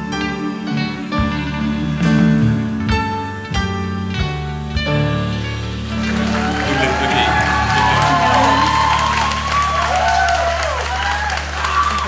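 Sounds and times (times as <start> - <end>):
voices singing duet: 0.0 - 3.9, 6.1 - 10.6
band holding low notes: 0.0 - 12.0
audience cheering: 5.8 - 12.0.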